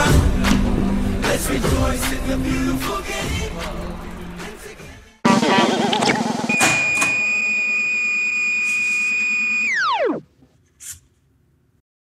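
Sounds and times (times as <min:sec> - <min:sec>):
electronic jingle tone sliding down: 0:05.3 - 0:10.2.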